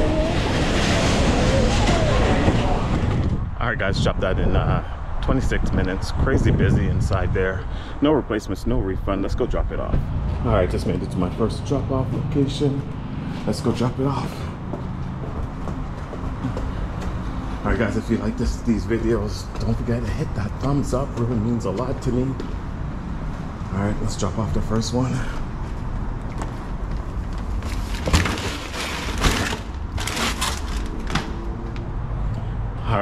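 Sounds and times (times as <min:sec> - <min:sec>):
steady low rumble: 0:00.0 - 0:16.5
footsteps on concrete stairs: 0:14.1 - 0:18.2, 0:18.8 - 0:23.5, 0:25.2 - 0:27.8
rustling and scuffing of groceries: 0:26.5 - 0:31.5.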